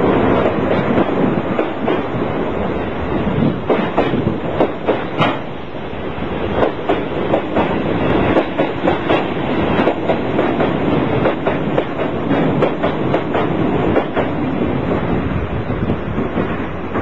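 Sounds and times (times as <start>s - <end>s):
train wheels clattering on rails: 0.0s - 17.0s.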